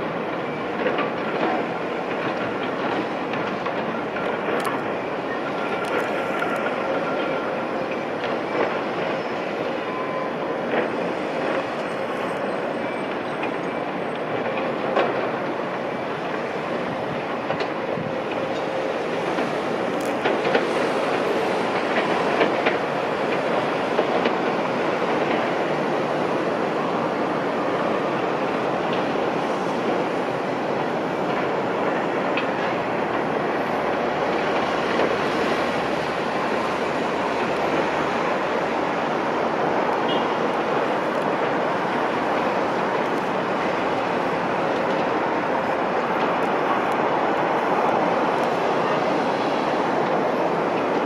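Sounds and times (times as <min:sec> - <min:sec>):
diesel engines of heavy machinery: 0:00.0 - 0:51.0.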